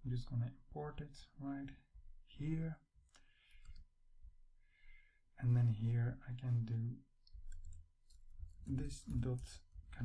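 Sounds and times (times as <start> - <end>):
keyboard and mouse clicks: 7.2 - 9.5.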